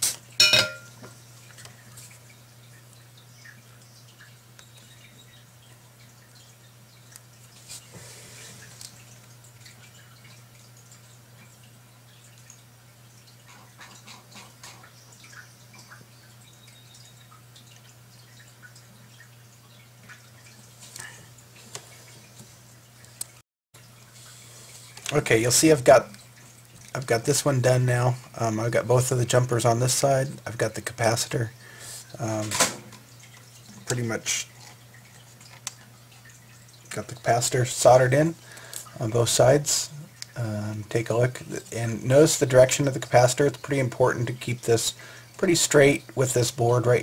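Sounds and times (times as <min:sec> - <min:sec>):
faint electrical hum: 0:00.0 - 0:47.0.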